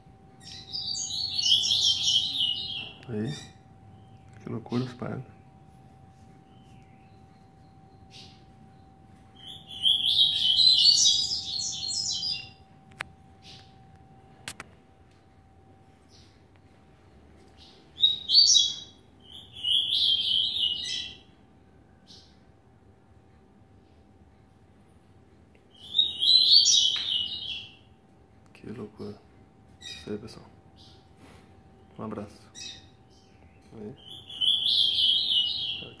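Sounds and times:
bird twittering song: 0.3s - 13.8s, 16.0s - 22.5s, 25.6s - 29.2s, 29.8s - 36.0s
bird calling: 0.4s - 4.4s, 6.4s - 12.6s.

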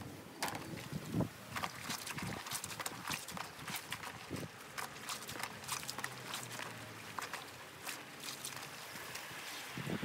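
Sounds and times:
wet clothes squelching in basin: 0.4s - 9.9s.

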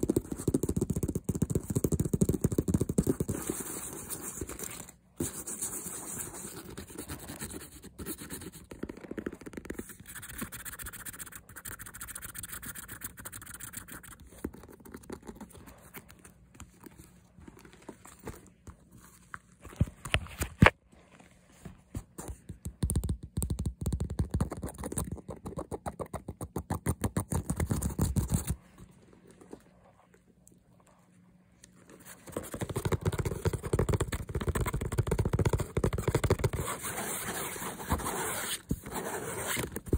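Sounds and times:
fast finger tapping on fabric: 0.0s - 4.4s, 5.2s - 15.5s, 22.2s - 28.6s, 32.3s - 37.5s.

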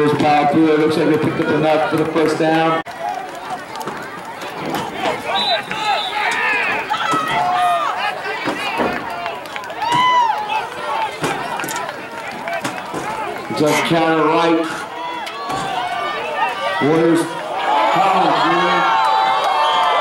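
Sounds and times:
people shouting outdoors: 2.6s - 20.0s.

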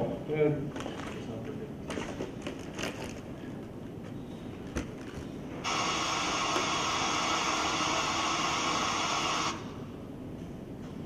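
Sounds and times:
electronic static hiss: 5.6s - 9.8s.

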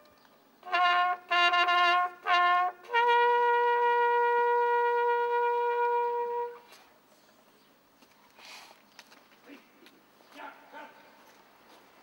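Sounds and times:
trumpet holding long note: 0.6s - 6.7s.

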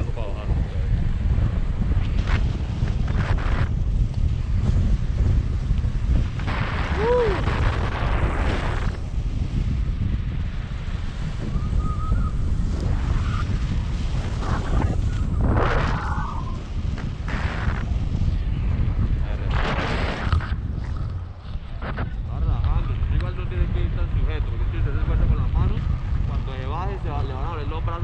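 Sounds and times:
wind rushing over microphone: 0.0s - 28.0s.

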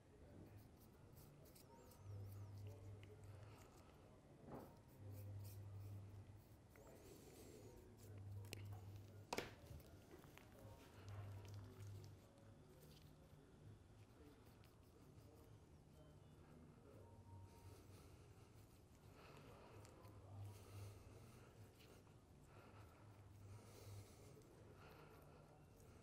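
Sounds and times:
faint low hum: 0.0s - 26.0s.

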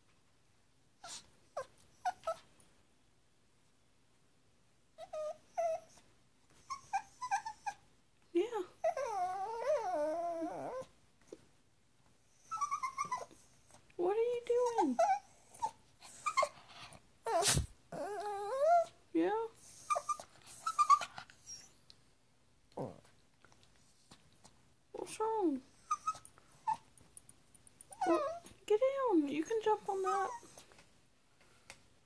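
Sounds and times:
puppy whining: 1.0s - 2.5s, 5.0s - 7.8s, 8.6s - 11.0s, 12.3s - 13.8s, 14.6s - 19.0s, 19.6s - 21.9s, 25.7s - 27.0s, 27.8s - 28.6s, 29.8s - 30.8s.

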